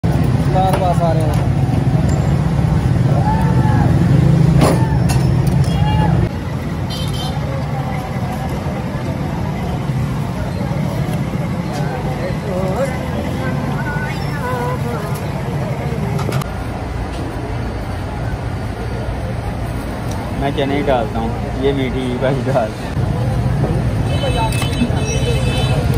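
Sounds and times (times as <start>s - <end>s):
traffic rumble: 0.0s - 25.9s
indistinct voices: 7.3s - 25.9s.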